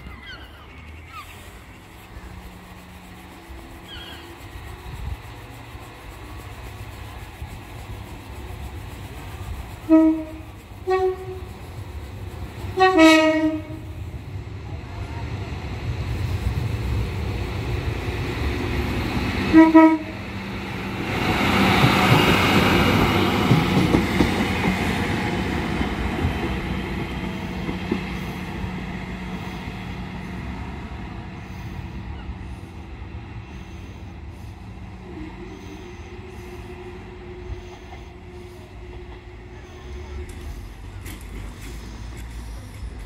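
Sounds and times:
low diesel engine hum: 0:00.0 - 0:43.0
train wheels on rails: 0:00.0 - 0:43.0.

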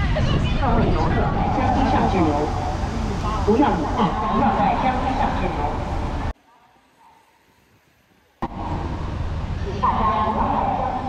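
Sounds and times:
rainy city street traffic: 0:00.0 - 0:11.0.

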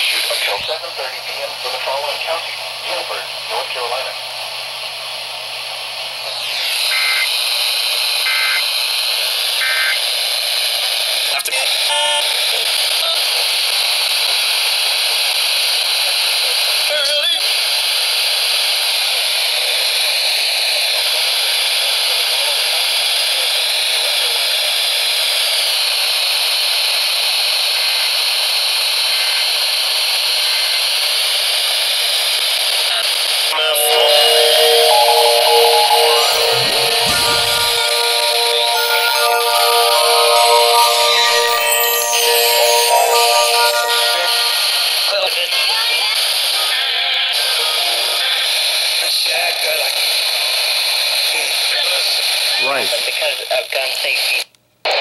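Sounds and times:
steady tone: 0:33.5 - 0:45.2.

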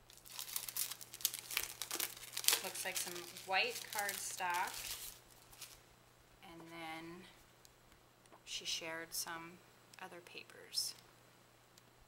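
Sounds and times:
paper packaging crinkling: 0:00.0 - 0:05.8.

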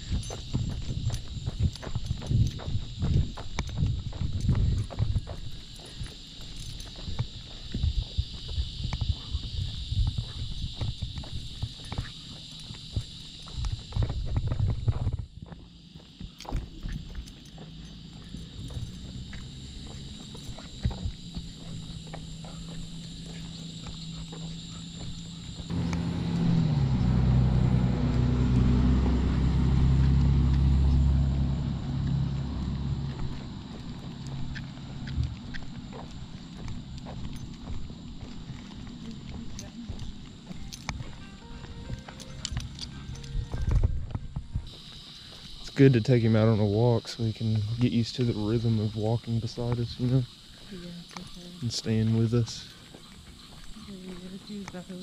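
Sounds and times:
leash clicks and rattles: 0:00.0 - 0:25.9, 0:32.0 - 0:45.8, 0:49.0 - 0:55.0
footsteps on concrete: 0:00.0 - 0:26.1, 0:33.1 - 0:45.8, 0:49.0 - 0:55.0
low rumble: 0:25.6 - 0:39.6.

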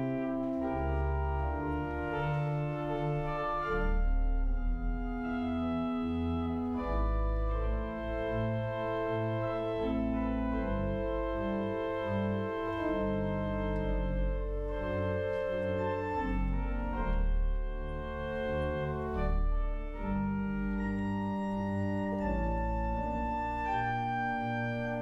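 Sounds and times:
church organ chords: 0:00.0 - 0:25.0.

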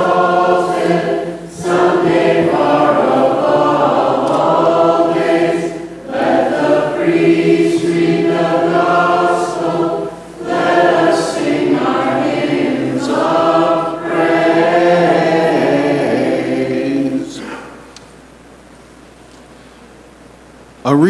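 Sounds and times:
voices singing a hymn: 0:00.0 - 0:18.0.

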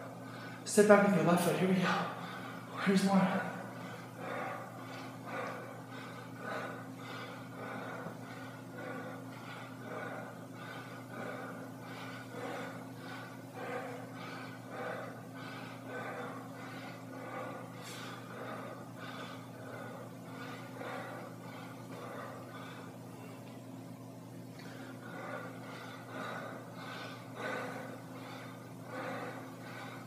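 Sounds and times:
man breathing hard: 0:00.0 - 0:01.1, 0:01.7 - 0:30.0
low hum: 0:00.0 - 0:30.0.

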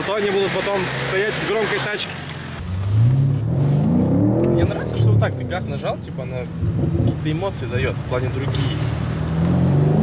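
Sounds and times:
car engine accelerating: 0:00.0 - 0:10.0.

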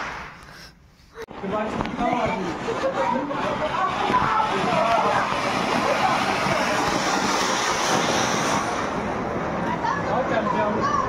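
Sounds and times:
firework fountain hissing: 0:00.0 - 0:10.9.

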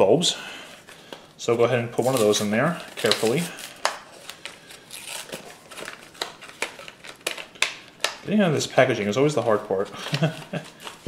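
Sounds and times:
packaging crackling: 0:02.0 - 0:08.4, 0:09.7 - 0:11.0
sharp packaging clicks: 0:02.0 - 0:08.4, 0:10.0 - 0:11.0.

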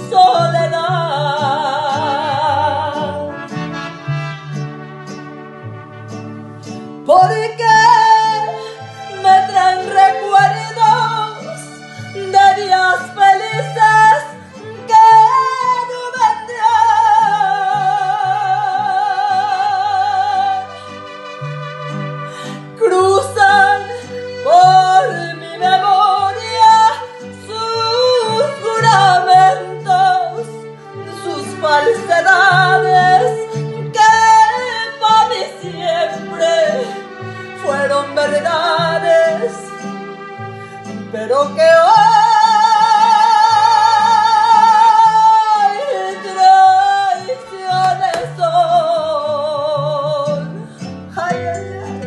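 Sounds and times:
woman singing with vibrato: 0:00.0 - 0:04.4, 0:07.0 - 0:40.2, 0:41.0 - 0:52.0
acoustic guitar: 0:00.0 - 0:52.0
recorded accompaniment: 0:00.0 - 0:52.0
woman singing wordless held notes: 0:51.1 - 0:52.0.

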